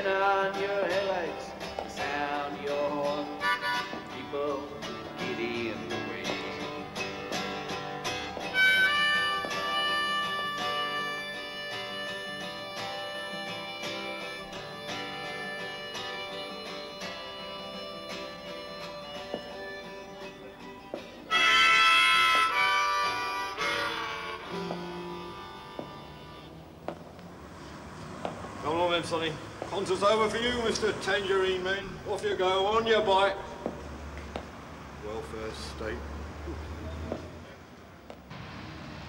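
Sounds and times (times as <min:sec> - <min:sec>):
strummed acoustic guitar: 0:00.0 - 0:26.6
harmonica playing long notes: 0:03.2 - 0:04.2, 0:08.1 - 0:27.0.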